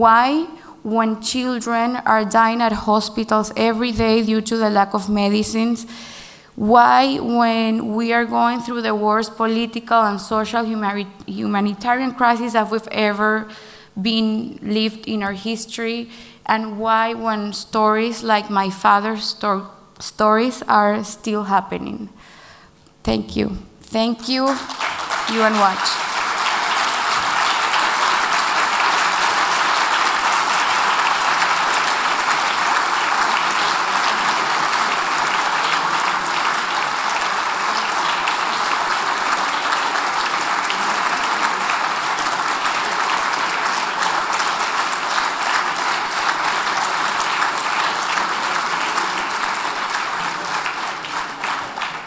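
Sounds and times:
audience applauding: 24.4s - 52.0s.

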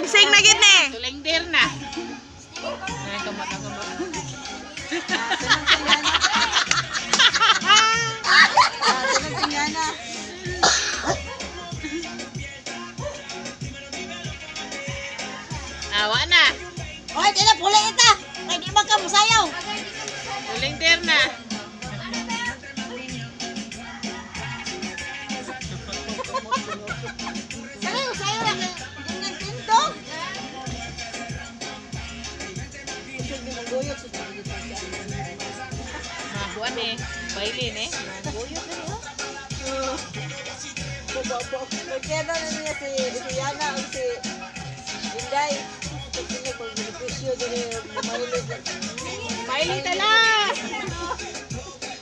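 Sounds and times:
music playing in room: 0.0s - 52.0s
people laughing: 1.7s - 13.5s, 19.5s - 31.6s, 34.3s - 51.8s
children shouting and squealing: 1.8s - 5.4s, 6.2s - 9.5s, 48.0s - 51.4s.

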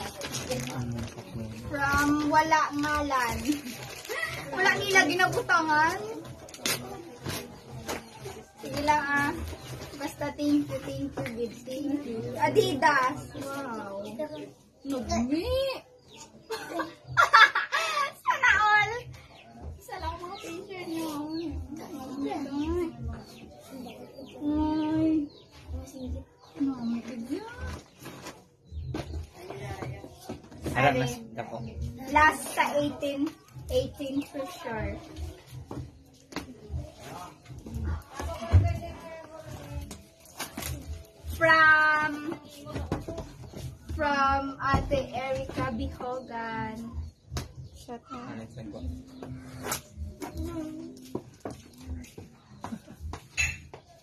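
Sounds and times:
gift wrapping rustling: 0.0s - 7.5s.

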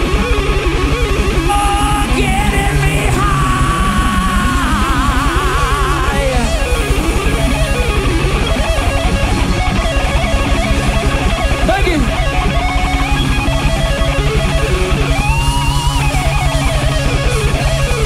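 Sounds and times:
electric guitar bending notes: 0.0s - 18.0s
hard rock band playing: 0.0s - 18.0s.

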